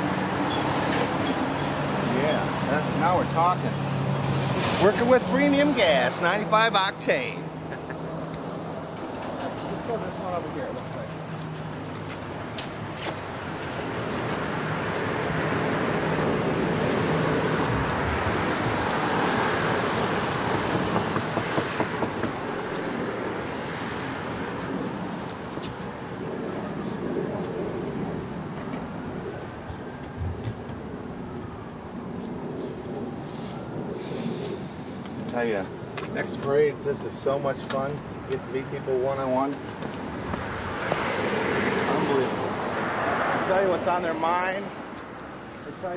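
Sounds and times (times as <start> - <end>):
road vehicle passing: 0.0 - 45.9.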